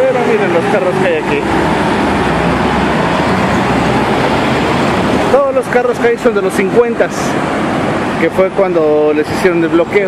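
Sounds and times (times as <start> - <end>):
cars driving past: 0.0 - 10.0.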